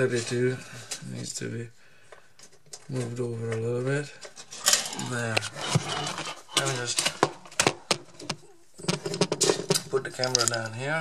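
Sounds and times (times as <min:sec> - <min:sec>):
objects clicking and rattling: 0:02.1 - 0:10.9.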